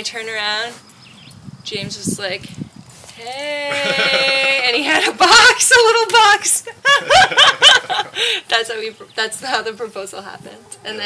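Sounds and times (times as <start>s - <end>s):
woman chuckling and laughing: 3.7s - 5.2s, 6.7s - 8.5s.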